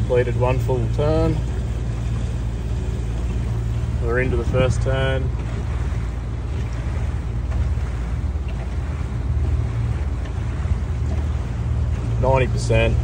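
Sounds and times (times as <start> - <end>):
boat engine rumbling: 0.0 - 13.0
water rushing along hull: 0.0 - 13.0
wind on microphone: 1.2 - 13.0.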